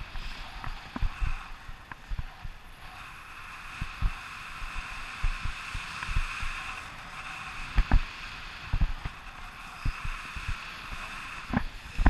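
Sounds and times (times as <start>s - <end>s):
low wind thumps: 0.0s - 2.9s, 3.7s - 6.7s, 8.7s - 9.2s
wind buffeting microphone: 0.0s - 12.0s.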